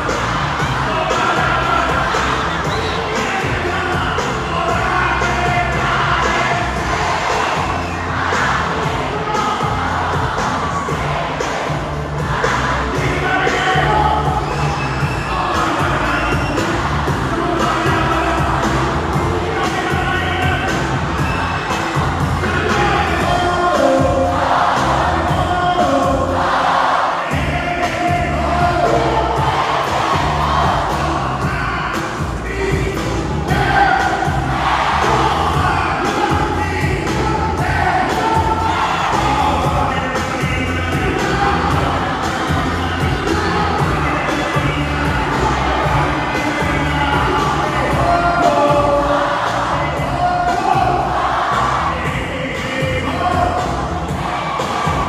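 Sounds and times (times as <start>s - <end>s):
crowd cheering and singing: 0.0s - 55.0s
live concert music: 0.0s - 55.0s.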